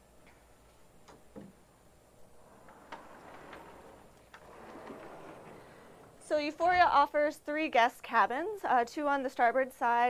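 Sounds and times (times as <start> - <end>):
low room noise hiss: 0.0 - 10.0
faint clicks and soft knocks: 2.2 - 6.9.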